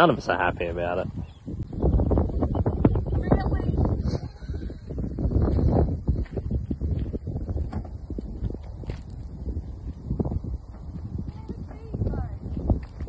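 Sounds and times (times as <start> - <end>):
wind buffeting microphone: 0.0 - 13.0
footsteps on gravel and grass: 5.2 - 13.0.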